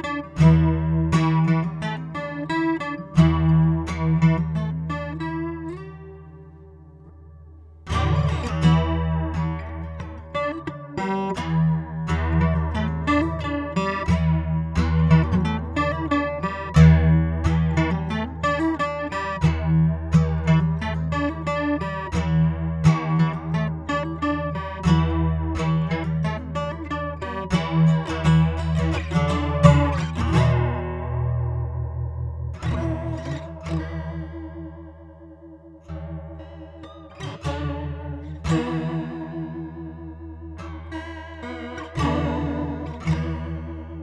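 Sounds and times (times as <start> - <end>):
guitar with chorus effect: 0.0 - 44.0.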